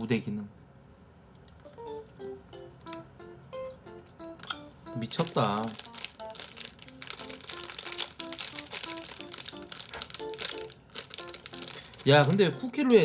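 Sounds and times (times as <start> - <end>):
light background music: 1.6 - 13.0
plastic wrapper crinkling: 5.0 - 13.0.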